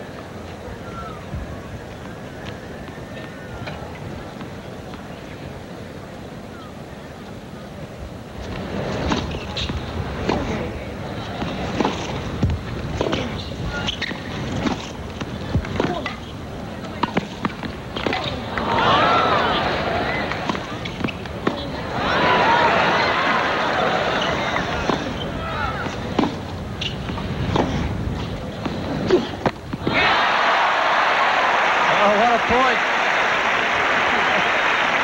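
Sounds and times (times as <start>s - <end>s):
stadium crowd murmur: 0.0s - 35.0s
tennis ball bouncing: 8.4s - 18.8s, 19.7s - 22.0s, 23.4s - 30.0s
racquets striking tennis ball: 8.4s - 30.2s.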